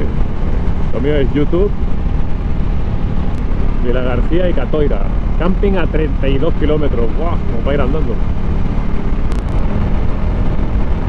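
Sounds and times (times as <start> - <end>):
motorcycle engine drone: 0.0 - 11.0
wind rush: 0.0 - 11.0.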